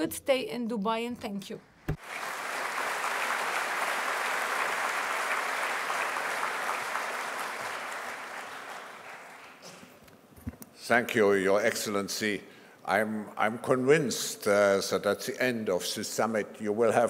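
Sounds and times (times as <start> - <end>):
audience applauding: 2.0 - 10.0.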